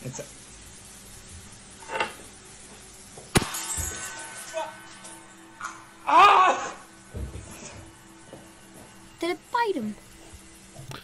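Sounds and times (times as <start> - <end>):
quiet background music: 3.3 - 11.0
wine glass shattering: 3.4 - 5.8.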